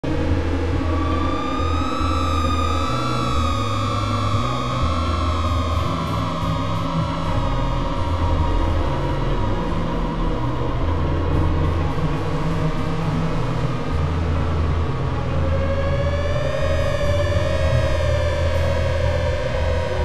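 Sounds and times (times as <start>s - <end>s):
stuttering bass drone: 0.0s - 20.0s.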